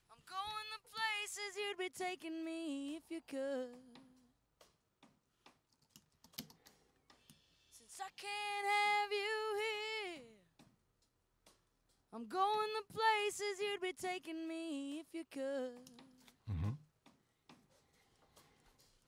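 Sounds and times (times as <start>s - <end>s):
woman singing: 0.0s - 4.3s, 7.8s - 10.5s, 12.2s - 16.3s
computer clicks: 5.5s - 7.4s.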